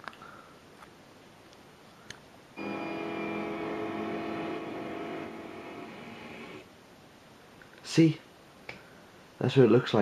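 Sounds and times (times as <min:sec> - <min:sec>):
film soundtrack drone: 0:02.6 - 0:06.6.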